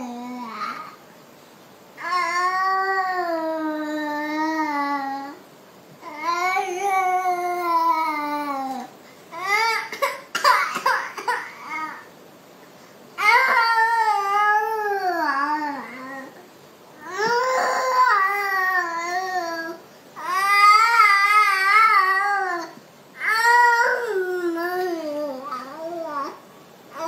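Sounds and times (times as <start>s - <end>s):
baby whining cry: 2.0s - 5.4s, 6.0s - 10.1s, 13.2s - 16.4s, 17.0s - 27.0s
baby crying: 17.0s - 26.4s.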